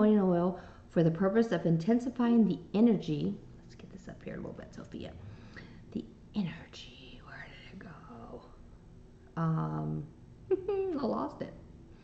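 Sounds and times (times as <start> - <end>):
woman whispering: 6.4 - 8.6.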